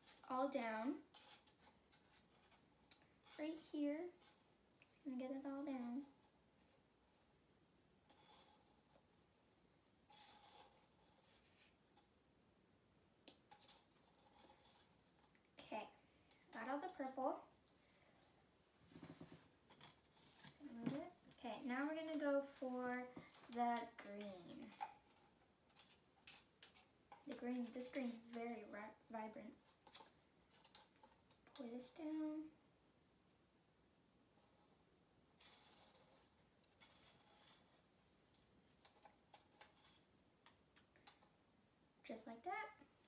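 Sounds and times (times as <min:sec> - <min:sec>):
stir stick scraping plastic cup: 0:00.0 - 0:06.4, 0:08.0 - 0:09.1, 0:10.1 - 0:12.1, 0:13.3 - 0:15.6, 0:19.0 - 0:32.0, 0:35.4 - 0:41.3.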